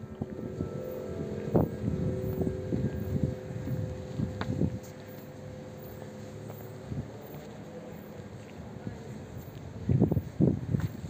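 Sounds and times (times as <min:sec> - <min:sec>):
wind buffeting microphone: 0:00.0 - 0:07.4, 0:08.1 - 0:11.0
faint steady hum: 0:00.0 - 0:11.0.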